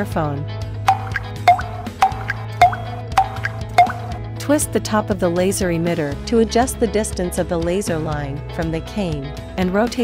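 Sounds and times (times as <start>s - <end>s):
soft background music: 0.0s - 10.0s
pitched tick-tock cue: 0.9s - 4.3s.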